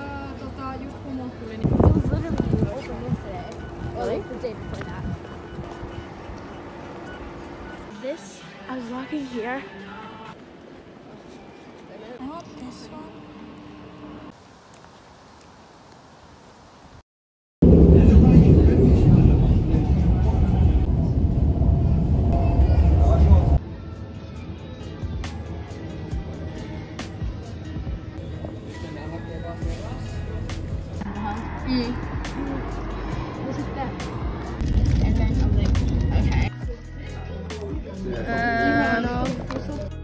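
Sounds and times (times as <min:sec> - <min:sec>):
passing road vehicle rumble: 0:00.0 - 0:11.6, 0:28.2 - 0:36.6
street traffic noise: 0:00.0 - 0:17.0, 0:20.0 - 0:40.0
background music: 0:07.9 - 0:10.6, 0:23.6 - 0:40.0
train low rumble: 0:17.6 - 0:23.7, 0:29.4 - 0:37.0.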